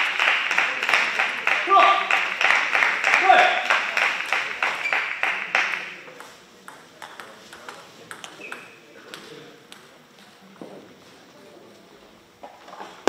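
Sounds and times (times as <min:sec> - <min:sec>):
people clapping: 0:00.0 - 0:06.2
voices in a large hall: 0:00.0 - 0:13.0
table tennis ball clicks: 0:04.6 - 0:09.9.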